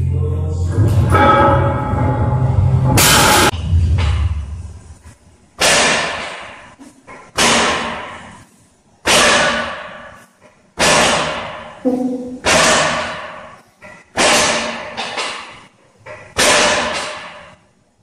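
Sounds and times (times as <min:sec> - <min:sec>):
background music: 0:00.0 - 0:03.5
metallic hits of gym weights: 0:00.7 - 0:04.8, 0:05.6 - 0:08.4, 0:09.0 - 0:17.7
loud bang: 0:00.7 - 0:08.4.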